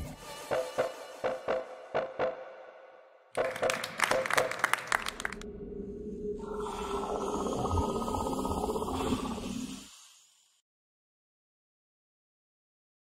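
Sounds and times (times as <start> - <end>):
clapping and cheering: 3.4 - 5.5
low hum: 5.2 - 9.9
steady hissing: 6.0 - 10.6.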